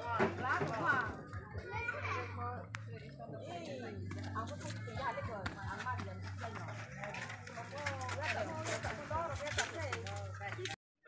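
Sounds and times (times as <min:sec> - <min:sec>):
people talking: 0:00.0 - 0:10.8.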